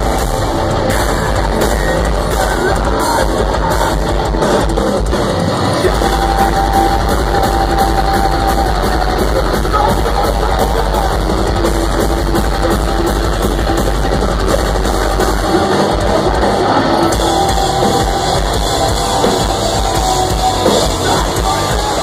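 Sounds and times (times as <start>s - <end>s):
distorted electric guitars: 0.0s - 22.0s
drum kit: 0.0s - 22.0s
keyboards: 0.0s - 22.0s.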